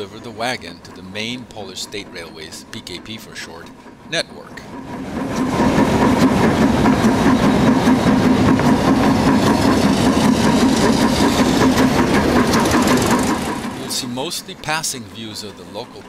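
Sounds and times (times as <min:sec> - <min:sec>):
train engine drone: 0:00.0 - 0:16.0
train running noise: 0:00.0 - 0:16.0.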